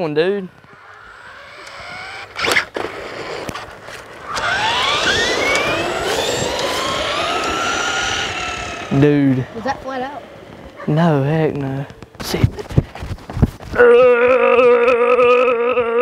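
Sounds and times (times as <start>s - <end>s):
toy truck motor whining: 0.5s - 10.8s.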